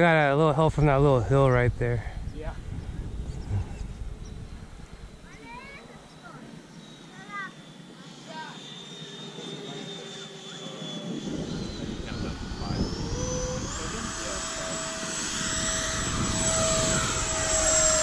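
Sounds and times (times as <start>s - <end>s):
model jet fan whine: 0.0s - 18.0s.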